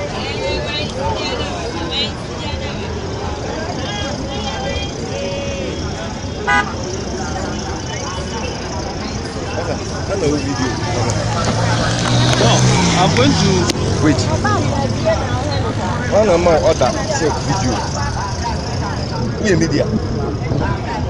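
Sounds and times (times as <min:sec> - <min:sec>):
people talking: 0:00.0 - 0:21.0
road traffic: 0:00.0 - 0:21.0
car horn toot: 0:06.4 - 0:06.9.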